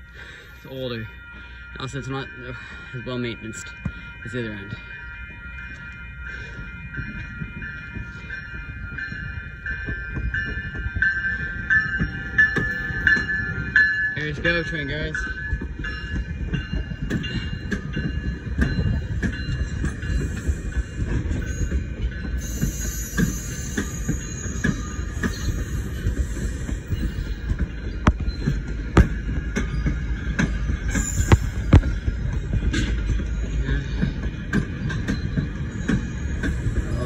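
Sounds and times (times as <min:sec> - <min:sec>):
train wheels rumbling on rail: 0:00.0 - 0:37.0
wheels clicking over rail joints: 0:01.8 - 0:37.0.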